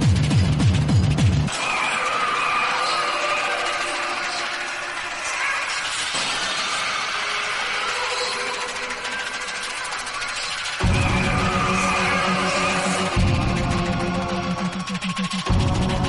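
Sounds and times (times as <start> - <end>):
noisy synth drone: 0.0 - 16.0.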